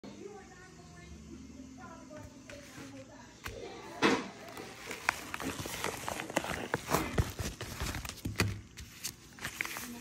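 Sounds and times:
padded envelope crinkling and rustling: 2.5s - 10.0s.

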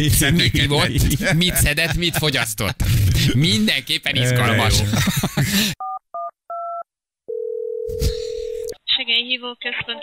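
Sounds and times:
telephone ringing tone: 5.8s - 8.7s.

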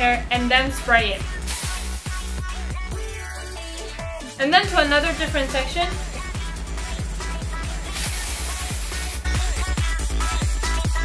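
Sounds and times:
electronic music with steady beat: 0.0s - 4.1s, 4.7s - 11.0s
aerosol can spraying: 1.4s - 2.5s, 7.9s - 9.3s.

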